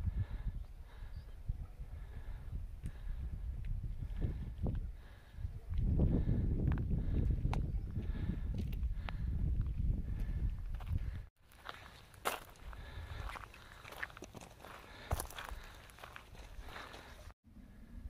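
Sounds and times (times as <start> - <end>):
wind rumbling on microphone: 0.0 - 11.3
footsteps on gravel: 10.2 - 17.4.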